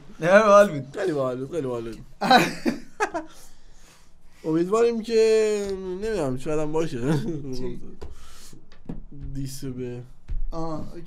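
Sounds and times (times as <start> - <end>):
men laughing: 2.2 - 3.6, 6.9 - 8.0.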